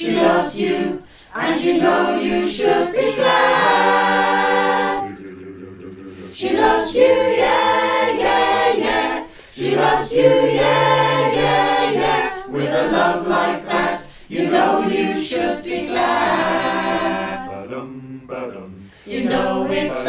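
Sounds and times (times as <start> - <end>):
a cappella choir singing: 0.0 - 20.0.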